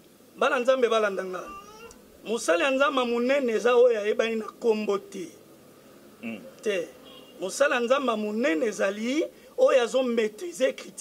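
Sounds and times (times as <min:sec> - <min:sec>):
man speaking: 0:00.4 - 0:05.4, 0:06.2 - 0:11.0.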